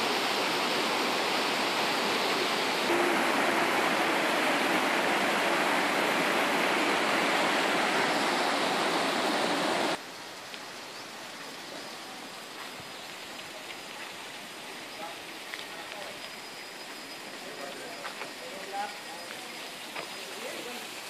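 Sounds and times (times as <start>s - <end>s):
stream rushing over rocks: 0.0s - 21.0s.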